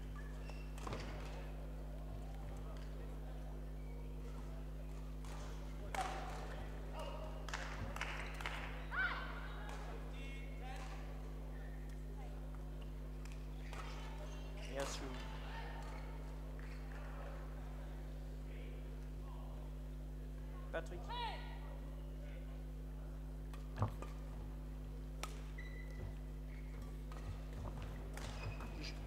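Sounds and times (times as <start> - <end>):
low electrical hum: 0.0 - 29.0
squeaks: 25.6 - 26.7.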